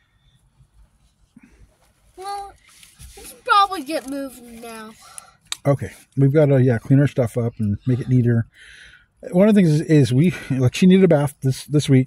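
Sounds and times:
faint low car cabin rumble: 0:00.0 - 0:12.0.

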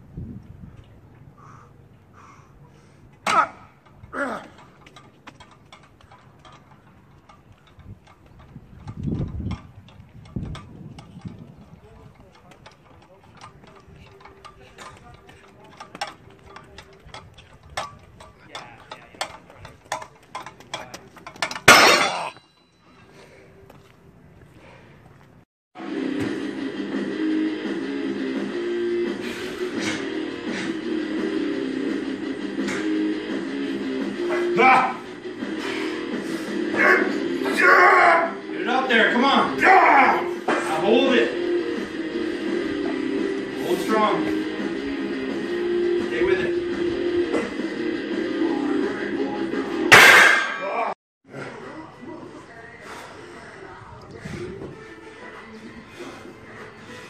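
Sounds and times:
iron weight plates clinking: 0:03.2 - 0:22.8, 0:49.9 - 0:50.9
weights crashing down: 0:21.2 - 0:22.4, 0:49.9 - 0:50.9
background music: 0:25.8 - 0:57.0.

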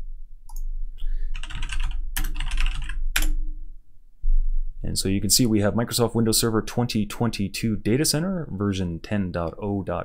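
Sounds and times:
typing on computer keyboard: 0:01.3 - 0:03.4.

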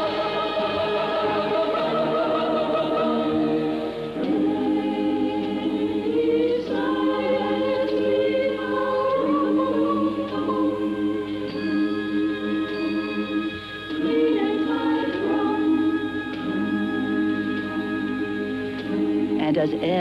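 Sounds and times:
choir singing sustained chords: 0:00.0 - 0:20.0.

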